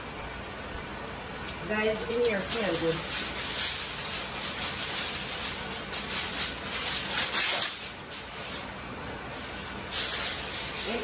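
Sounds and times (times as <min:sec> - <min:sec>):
aluminium foil crinkling: 0:01.5 - 0:11.0.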